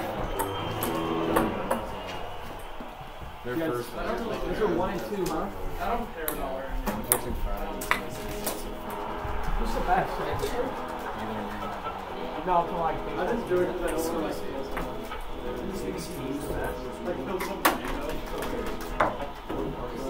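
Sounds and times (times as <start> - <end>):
music playing: 0.0 - 6.1, 6.7 - 20.0
people talking: 3.4 - 8.8, 9.4 - 20.0.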